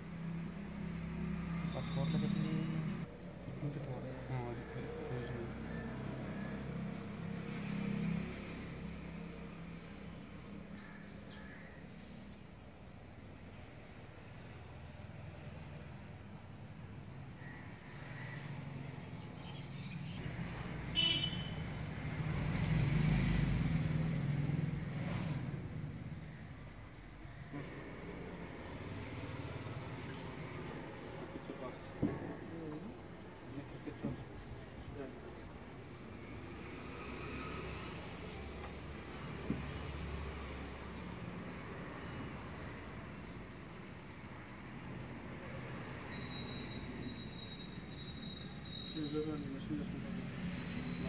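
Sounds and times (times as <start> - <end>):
vehicle passing: 0.0 - 11.2, 17.9 - 43.4, 49.2 - 51.0
road traffic rumbling: 0.0 - 51.0
high bird chirps: 46.2 - 49.2.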